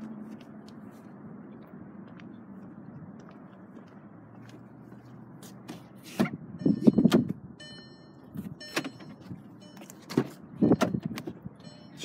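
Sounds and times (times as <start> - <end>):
car door latch clunks and clicks: 7.0 - 7.4, 9.8 - 11.4.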